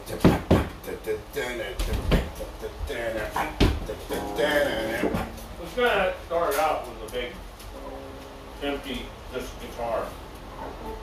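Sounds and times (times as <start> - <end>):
indistinct voice: 0.0 - 5.8
guitar playing: 3.9 - 6.2.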